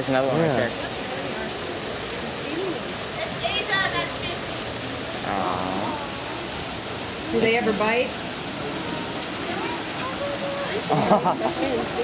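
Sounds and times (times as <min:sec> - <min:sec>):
waterfall splashing into pool: 0:00.0 - 0:12.0.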